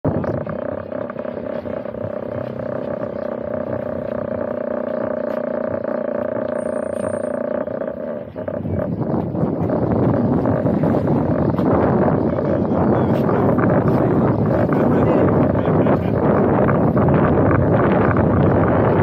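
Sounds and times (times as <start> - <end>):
rough rushing noise: 0.0 - 19.0
droning hum with held tone: 0.1 - 19.0.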